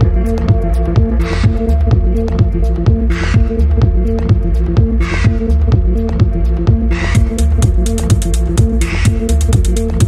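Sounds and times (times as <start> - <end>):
fast ticking hi-hats: 0.0 - 10.0
low throbbing drone: 0.0 - 10.0
steady techno kick drum: 0.0 - 10.0.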